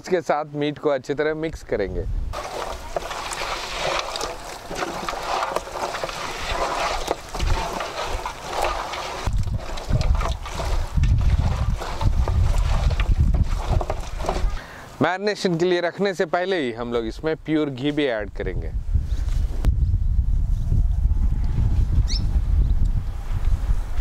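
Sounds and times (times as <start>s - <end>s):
wind rumble on microphone: 1.7s - 2.7s, 6.4s - 14.6s, 18.2s - 24.0s
hand squelching meat mixture: 2.4s - 14.6s.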